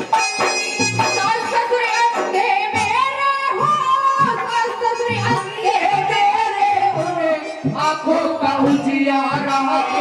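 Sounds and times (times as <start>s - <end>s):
instrumental accompaniment with low beat: 0.0s - 3.0s
woman singing into microphone: 1.0s - 10.0s.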